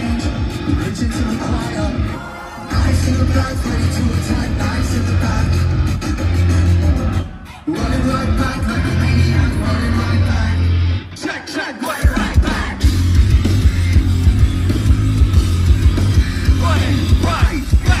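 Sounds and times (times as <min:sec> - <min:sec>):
hard-hit drums: 0:00.0 - 0:10.6, 0:12.0 - 0:18.0
heavy rock band playing: 0:00.0 - 0:18.0.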